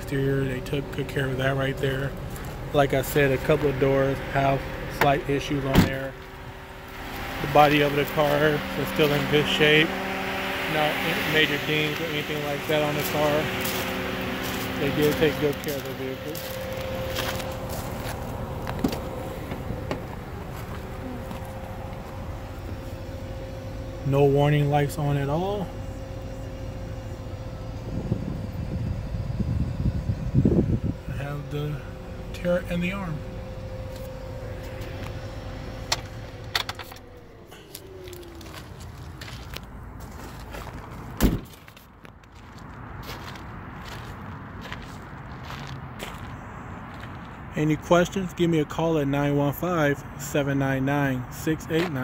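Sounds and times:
engine idling: 0:00.0 - 0:42.1
faint constant whine: 0:00.0 - 0:52.0
car door shutting: 0:04.8 - 0:06.3, 0:16.8 - 0:22.8, 0:35.8 - 0:38.7, 0:41.1 - 0:41.7.

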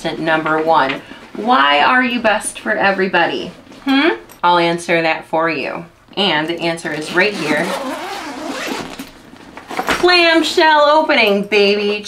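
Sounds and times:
zipper rasping open: 0:06.9 - 0:09.8
zipper clicks: 0:06.9 - 0:10.0.

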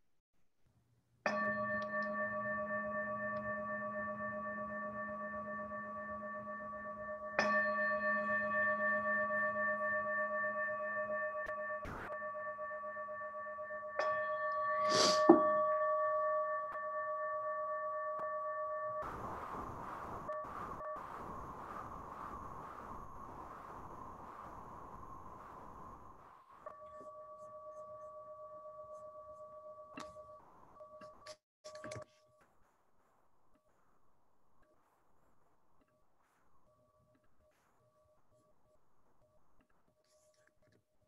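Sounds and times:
meditation bell ringing: 0:01.3 - 0:19.1, 0:26.7 - 0:31.2
faint hiss: 0:19.0 - 0:26.8.

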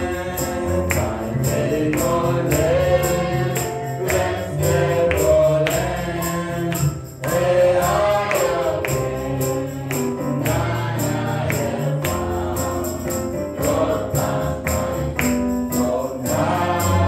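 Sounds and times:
gospel voices singing: 0:00.0 - 0:17.0
steady percussion beat: 0:00.0 - 0:17.0.

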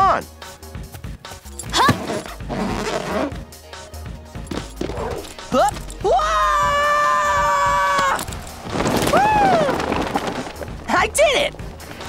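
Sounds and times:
cartoon background music: 0:00.0 - 0:07.8.

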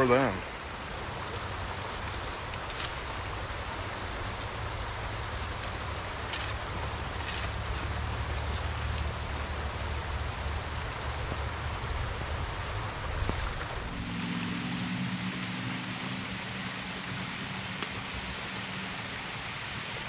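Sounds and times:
creek water over rocks: 0:00.0 - 0:20.0
low rumble: 0:13.7 - 0:20.0.

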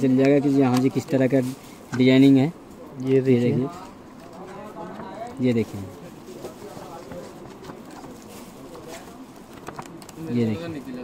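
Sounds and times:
plastic-covered pages crinkling: 0:03.7 - 0:11.0.

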